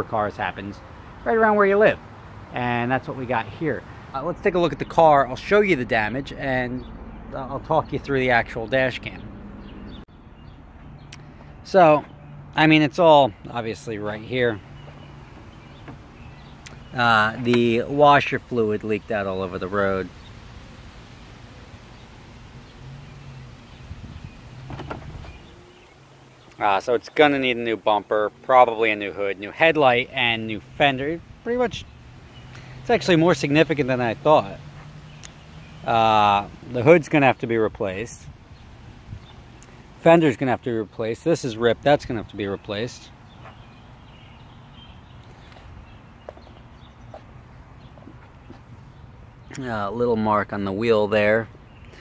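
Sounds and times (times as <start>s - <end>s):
soft footsteps on asphalt: 9.6s - 12.4s, 14.5s - 17.9s, 34.6s - 35.8s, 43.1s - 49.7s.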